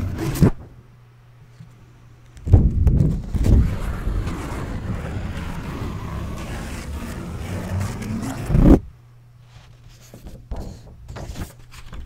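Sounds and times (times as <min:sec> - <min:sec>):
paper tearing: 0:03.3 - 0:08.8.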